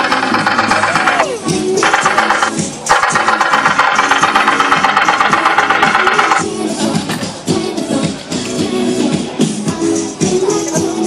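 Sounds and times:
pulsing mechanical rattling buzz: 0.0 - 6.4
music: 0.0 - 11.0.

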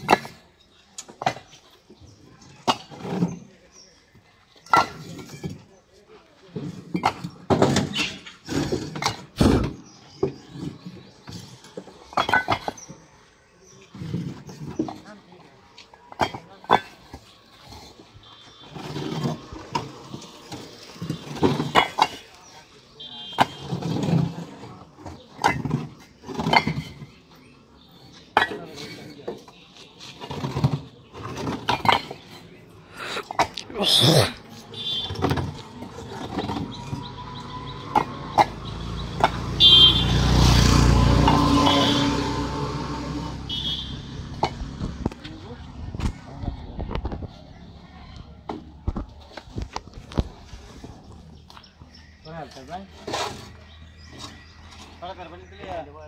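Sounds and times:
bricks clinking together: 0.0 - 1.6, 2.5 - 3.5, 4.6 - 5.7, 6.5 - 13.0, 15.8 - 18.0, 18.6 - 22.4, 23.3 - 27.4, 28.3 - 32.6, 33.2 - 37.0
voices talking: 0.0 - 56.0.

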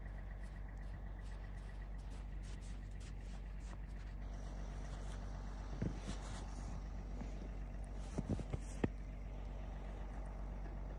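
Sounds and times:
low mechanical hum: 0.0 - 10.9.

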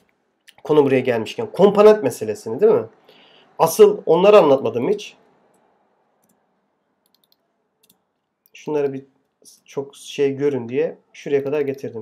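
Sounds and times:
faint computer clicks: 7.0 - 9.4.

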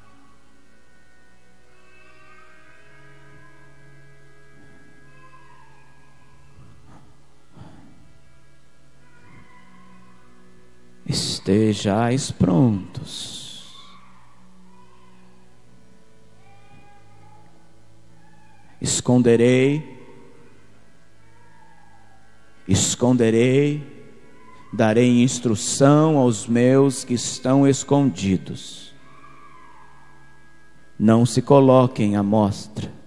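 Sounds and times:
soft held chord music: 0.0 - 33.0
man preaching loudly: 11.1 - 14.0, 18.8 - 20.2, 22.7 - 29.0, 31.0 - 33.0.

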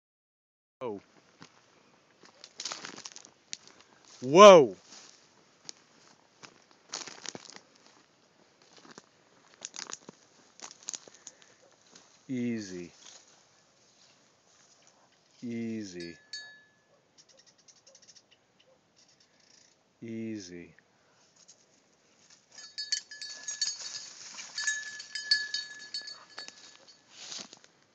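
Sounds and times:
dry grass rustling and crackling: 1.2 - 4.2, 4.8 - 15.4, 21.2 - 27.9
short metallic ring: 16.0 - 16.9, 22.5 - 27.3
dog rustling through dry grass: 25.9 - 27.7.

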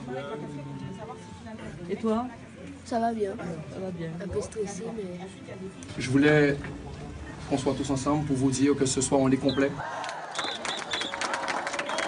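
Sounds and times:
crowd clapping: 9.8 - 12.0.

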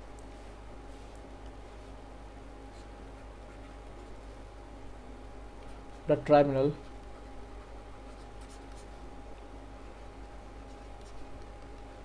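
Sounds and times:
steady electrical hum: 0.0 - 12.0
stylus scratching on pen tablet: 6.7 - 9.0, 9.9 - 11.9.

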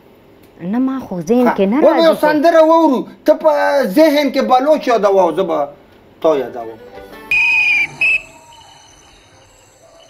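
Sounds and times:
whistle blasts: 7.3 - 9.7.

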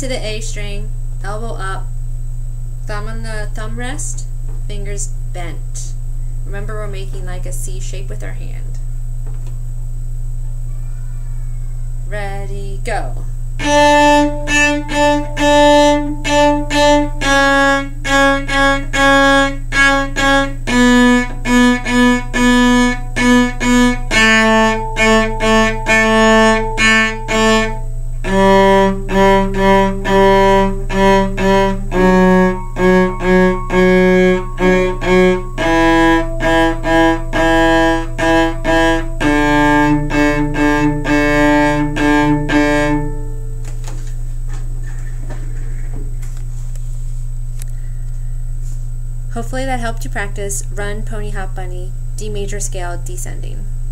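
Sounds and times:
steady low hum: 0.0 - 53.9
cello playing a descending scale: 13.6 - 43.6.

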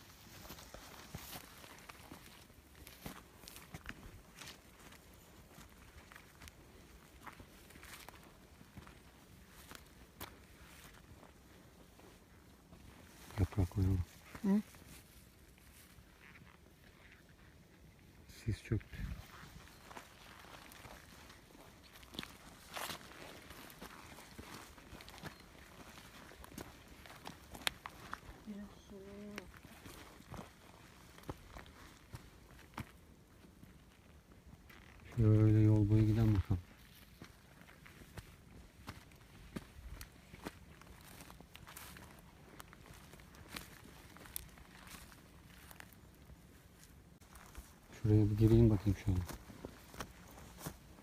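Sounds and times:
footsteps through dry grass: 0.0 - 51.0.

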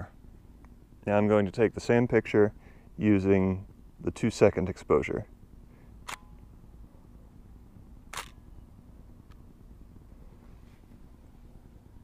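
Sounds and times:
camera shutter clack: 6.0 - 6.3, 8.1 - 8.4.

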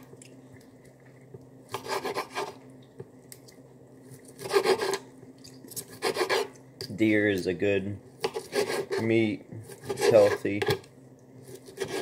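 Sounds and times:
close scraping and rubbing: 8.4 - 10.6.

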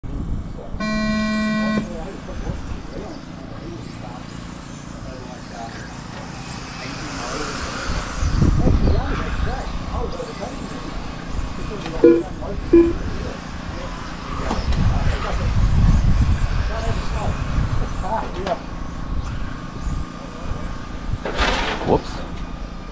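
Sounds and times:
start horn tone: 0.8 - 1.9, 12.0 - 13.0.

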